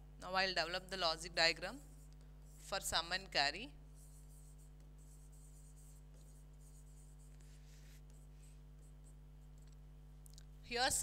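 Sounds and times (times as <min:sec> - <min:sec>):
steady low hum: 0:00.0 - 0:11.0
pen scratching on a board: 0:04.0 - 0:09.2.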